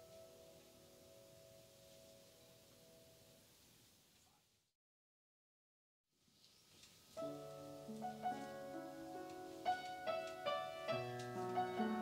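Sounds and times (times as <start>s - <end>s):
faint piano chord ringing: 0.0s - 3.5s, 7.2s - 12.0s.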